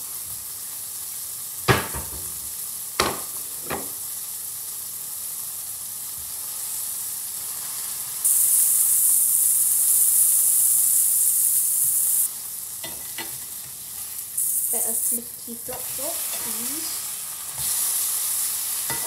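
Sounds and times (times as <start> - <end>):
burgers sizzling in a frying pan: 0.0 - 19.0
spatula working in pan: 12.8 - 19.0.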